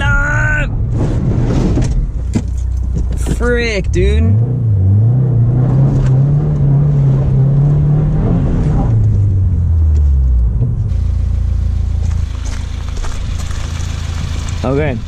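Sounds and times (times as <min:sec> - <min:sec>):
car engine revving and idling: 0:00.7 - 0:15.0.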